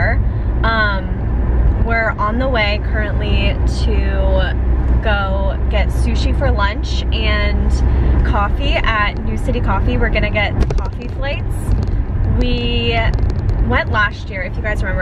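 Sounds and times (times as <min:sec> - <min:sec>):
woman talking: 0:00.0 - 0:01.2, 0:01.8 - 0:15.0
car cabin rumble: 0:00.0 - 0:15.0.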